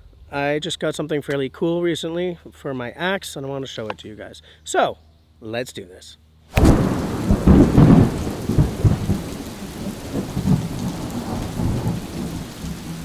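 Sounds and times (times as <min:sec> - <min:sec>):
steady rain: 0:06.5 - 0:13.0
rolling thunder: 0:06.6 - 0:13.0.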